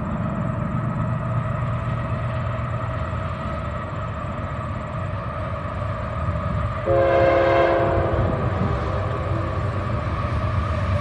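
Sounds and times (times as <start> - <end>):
distant diesel locomotives rumbling: 0.0 - 11.0
steady higher tones: 6.8 - 11.0.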